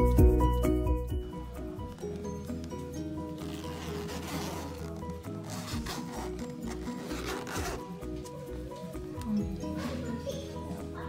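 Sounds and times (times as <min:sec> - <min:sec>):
background music: 0:00.0 - 0:11.0
zipper being pulled: 0:03.3 - 0:08.4.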